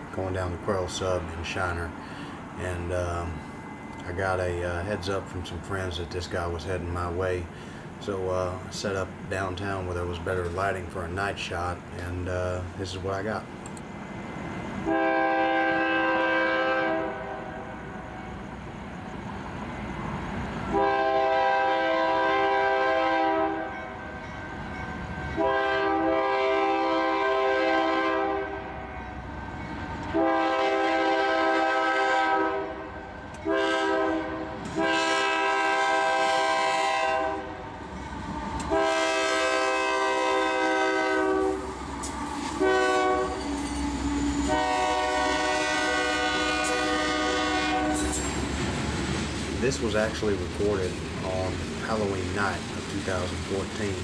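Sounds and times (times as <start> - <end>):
train rumbling: 0.0 - 54.0
locomotive air horn blasts: 14.8 - 17.8, 20.7 - 23.9, 25.4 - 29.0, 30.1 - 37.6, 38.7 - 41.7, 42.5 - 48.2.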